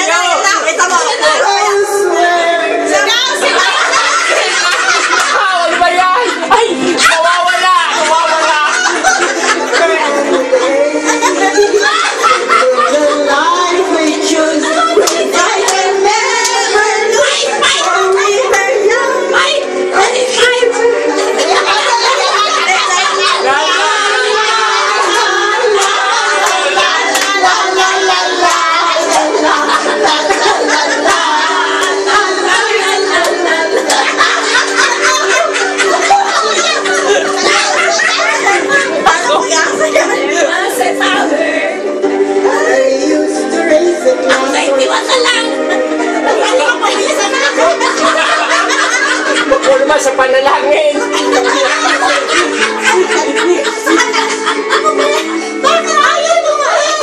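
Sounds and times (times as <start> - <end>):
people singing together: 0.0 - 57.0
song with vocals from television: 0.0 - 57.0
hand claps: 25.8 - 27.4.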